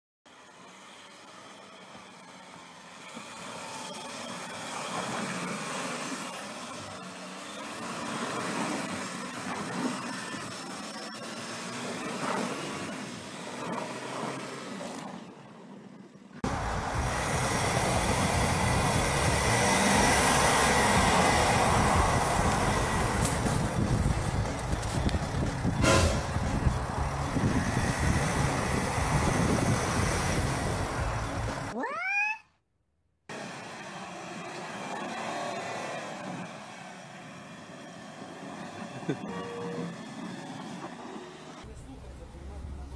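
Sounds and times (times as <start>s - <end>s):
engines running under load: 0.3s - 31.8s, 33.3s - 42.9s
tyres spinning in snow: 16.4s - 31.7s.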